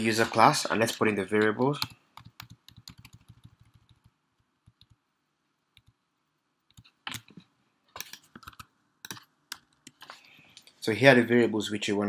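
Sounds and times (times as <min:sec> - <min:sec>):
computer keyboard typing: 0:01.4 - 0:05.0, 0:08.0 - 0:10.1.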